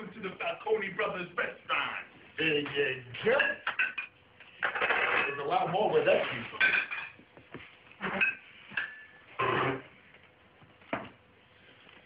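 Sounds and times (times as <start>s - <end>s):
plates and cutlery clinking: 2.6s - 7.2s, 8.0s - 9.2s.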